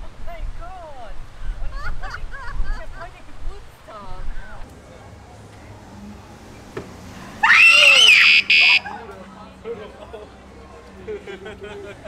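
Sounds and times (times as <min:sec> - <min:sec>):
quiet talk: 0:00.3 - 0:07.1, 0:08.5 - 0:12.0
high-pitched scream of fright: 0:07.4 - 0:08.9.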